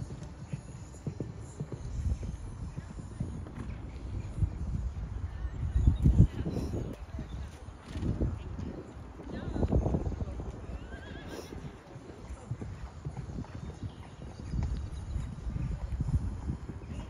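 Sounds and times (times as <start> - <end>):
horse hoofbeats on sand: 0.0 - 17.0.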